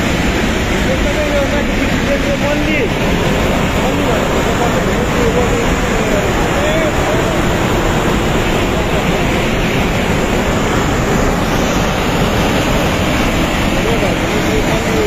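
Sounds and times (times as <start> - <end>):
river torrent rushing: 0.0 - 15.0.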